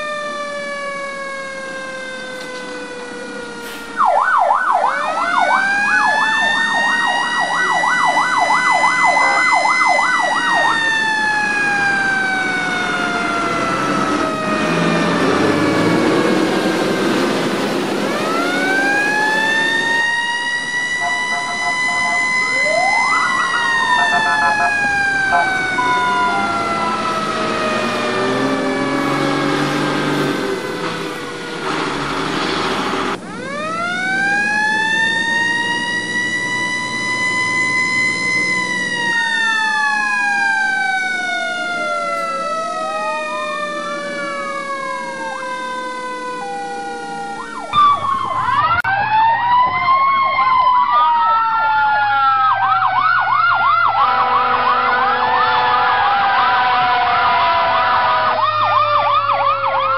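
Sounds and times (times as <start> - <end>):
fire engine sirens: 0.0 - 59.9.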